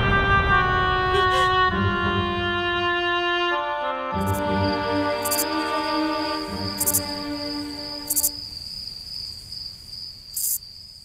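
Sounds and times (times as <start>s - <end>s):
crickets chirping: 4.2s - 11.0s.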